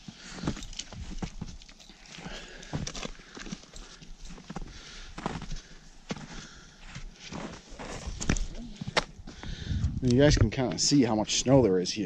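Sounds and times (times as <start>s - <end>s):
boots crunching through snow: 0.0s - 9.6s.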